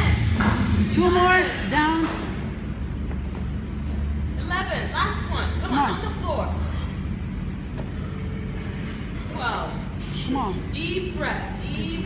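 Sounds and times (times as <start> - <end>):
low background noise in gym: 0.0 - 12.0.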